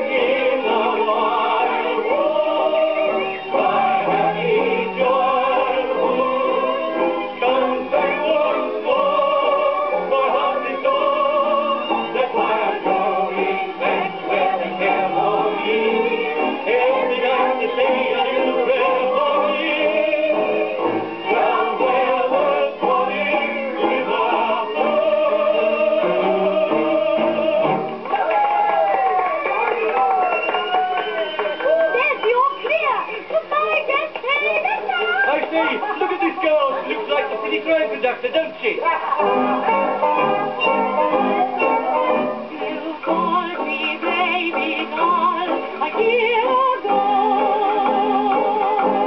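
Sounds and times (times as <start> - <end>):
band accompaniment: 0.0 - 49.0
old gramophone record with singing: 0.0 - 49.0.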